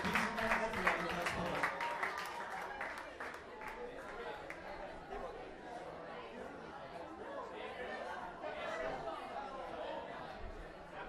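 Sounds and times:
many people chatting: 0:00.0 - 0:11.0.

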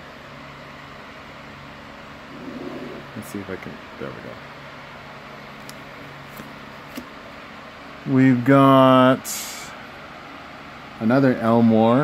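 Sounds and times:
electrical hum with faint hiss: 0:00.0 - 0:12.0
faint murmur: 0:02.2 - 0:03.5.

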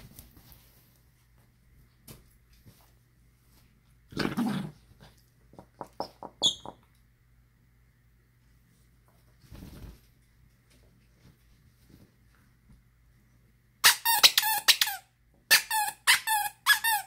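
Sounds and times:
squeaky toy squeaking: 0:13.8 - 0:17.0.

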